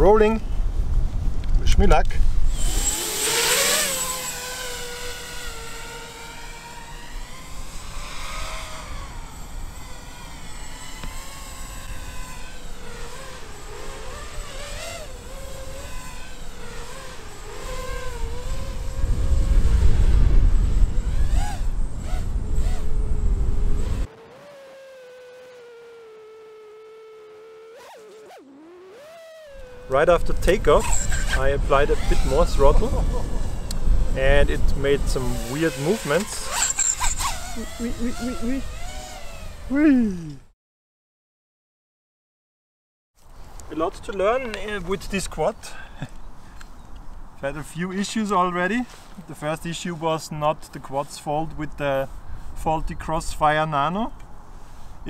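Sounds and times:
wind rumble on microphone: 0.0s - 2.9s, 17.6s - 24.1s, 29.9s - 35.8s
quadcopter motors whining: 1.4s - 40.5s, 43.4s - 50.2s.

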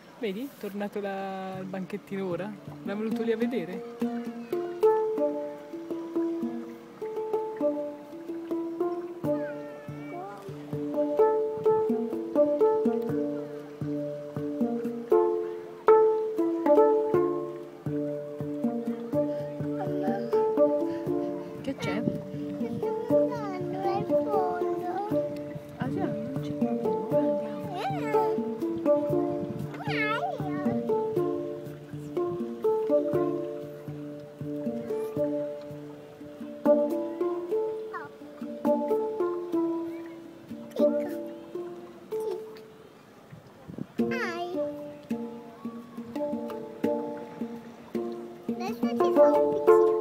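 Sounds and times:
handpan melody: 0.3s - 50.0s.

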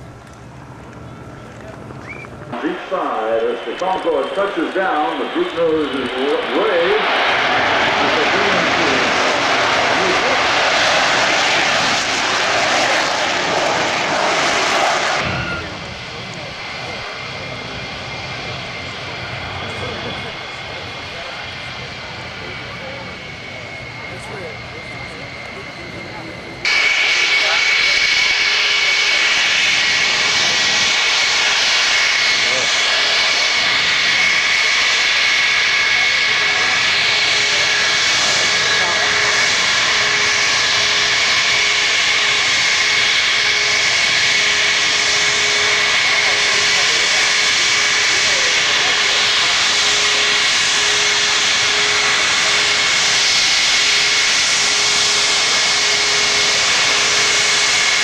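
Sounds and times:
jet engine whine: 0.0s - 58.0s
rush of jet noise: 2.5s - 18.6s, 26.6s - 58.0s.

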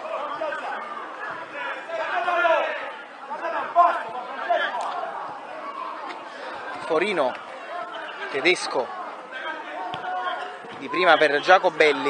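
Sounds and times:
overlapping voices chattering: 0.0s - 12.0s.

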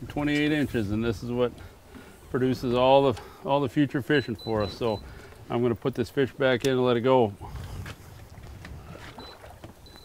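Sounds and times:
wind: 0.0s - 10.0s
choppy water: 7.0s - 10.0s.

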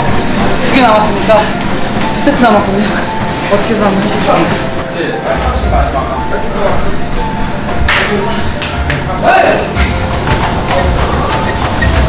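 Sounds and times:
background music: 0.0s - 12.0s
footfalls on treadmill belts: 9.8s - 12.0s.

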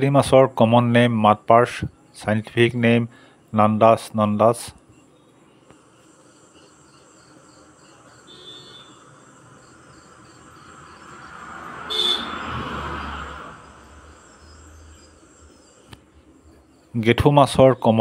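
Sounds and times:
insects chirping: 0.0s - 18.0s.

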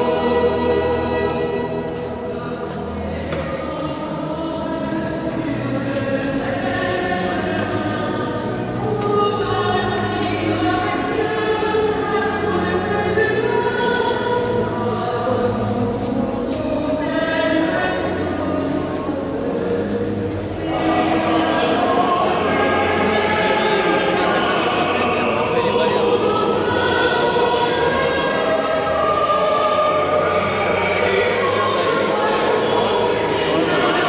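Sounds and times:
choir singing a hymn: 0.0s - 34.0s.

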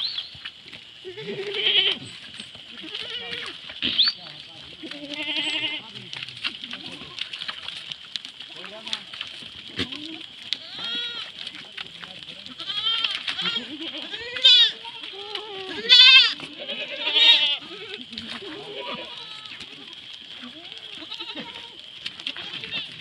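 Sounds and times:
goats bleating: 1.0s - 7.6s, 9.7s - 11.5s, 12.4s - 23.0s.

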